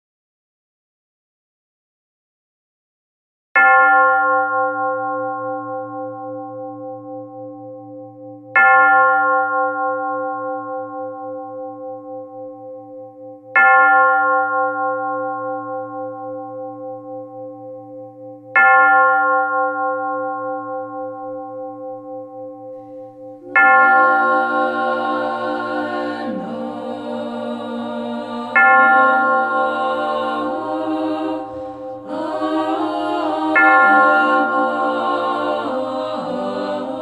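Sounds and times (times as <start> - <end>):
bell tolling: 22.8 - 37.0.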